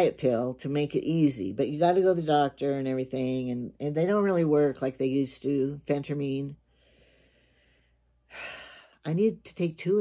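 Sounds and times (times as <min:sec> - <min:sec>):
woman breathing: 0:06.6 - 0:09.0.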